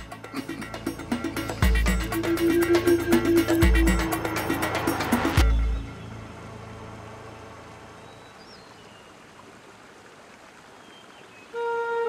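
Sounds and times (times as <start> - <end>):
soft music with held notes: 0.0 - 6.5
rocky stream rushing: 0.0 - 12.0.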